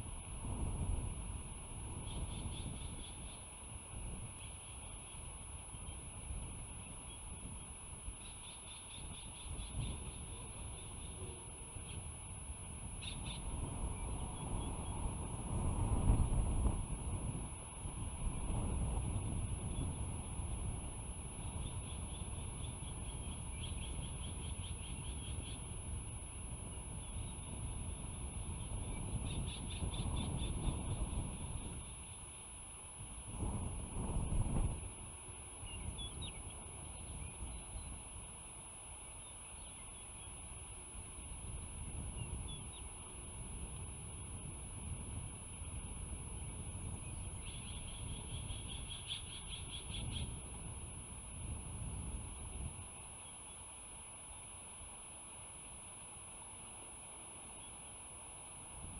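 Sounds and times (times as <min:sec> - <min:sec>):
wind rumble on microphone: 0:00.0 - 0:53.5, 0:58.7 - 0:58.9
eagle high piping chirps: 0:47.1 - 0:50.4.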